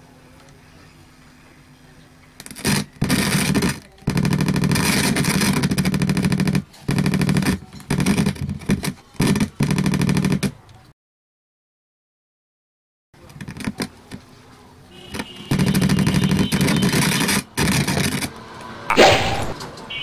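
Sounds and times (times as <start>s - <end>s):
loud mains buzz from speaker: 14.9s - 17.8s.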